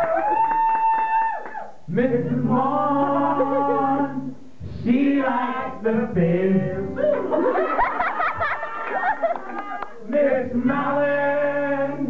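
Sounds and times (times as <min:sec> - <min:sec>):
group singing: 0:01.9 - 0:12.0.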